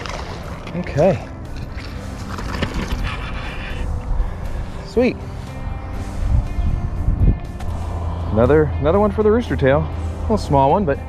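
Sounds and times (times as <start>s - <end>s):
wind rumbling on microphone: 1.6s - 10.8s.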